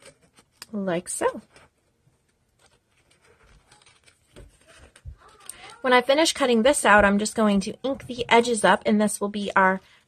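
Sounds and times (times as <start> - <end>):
light paper handling: 0.0 - 5.9
scissors snipping paper: 2.6 - 5.8.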